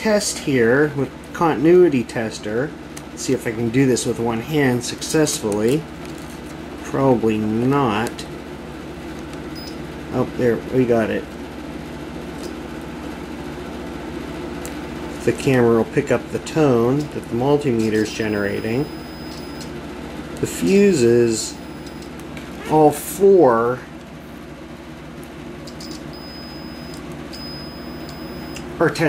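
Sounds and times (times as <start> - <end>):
steady low hum: 0.0 - 29.0
continuity tester low tone: 9.5 - 9.8, 17.8 - 19.8, 20.5 - 22.2, 25.6 - 29.0
multimeter beeping: 9.6 - 9.8, 18.0 - 19.7, 21.4 - 22.1, 25.7 - 28.6.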